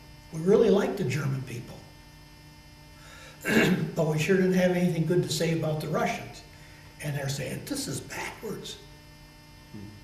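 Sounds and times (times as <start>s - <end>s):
low electrical hum: 0.0s - 10.0s
man clearing throat: 3.4s - 4.0s.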